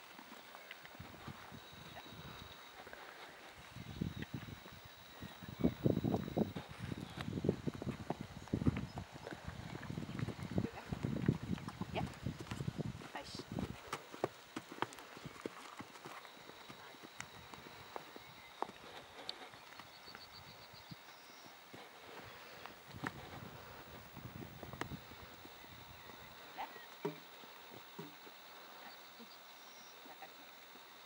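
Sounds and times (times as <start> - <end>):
horse hoofbeats on dirt: 0.1 - 28.4.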